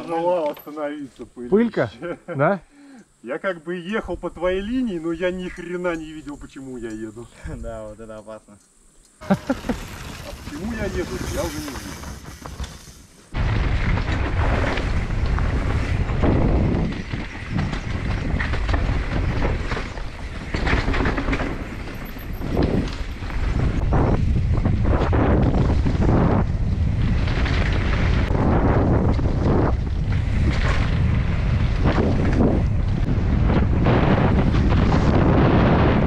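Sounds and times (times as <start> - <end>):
bike clattering over rocky trail: 9.7 - 35.8
wind buffeting microphone: 13.4 - 36.0.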